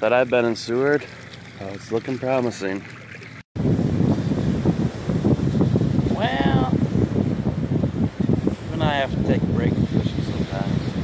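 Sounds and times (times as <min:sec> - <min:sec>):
wind buffeting microphone: 0:00.8 - 0:11.0.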